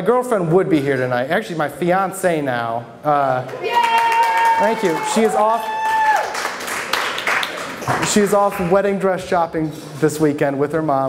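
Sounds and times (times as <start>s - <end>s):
man speaking: 0.0s - 3.5s, 4.6s - 5.7s, 8.0s - 11.0s
audience applauding: 3.4s - 8.7s.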